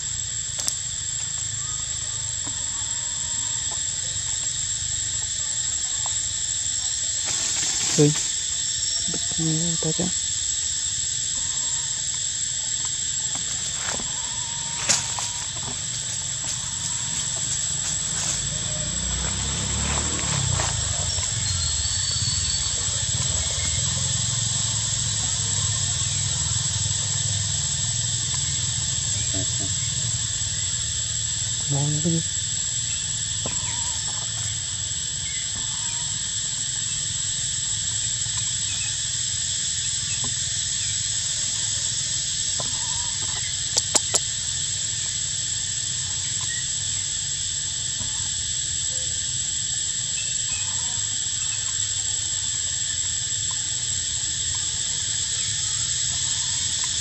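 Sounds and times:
forest insects droning: 0:00.0 - 0:57.0
sharp clicks: 0:43.8 - 0:44.3.

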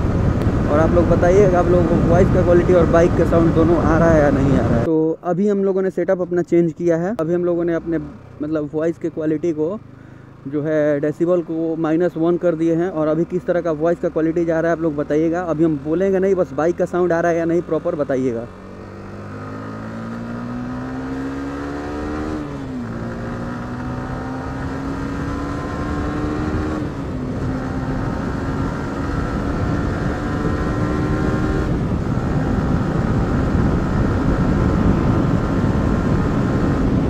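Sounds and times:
wind noise: 0:00.0 - 0:04.9, 0:19.2 - 0:37.0
motorcycle accelerating through gears: 0:16.9 - 0:37.0.

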